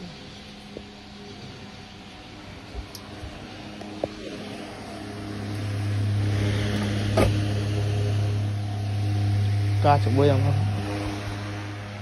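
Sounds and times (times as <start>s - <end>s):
fan motor humming: 0.0s - 12.0s.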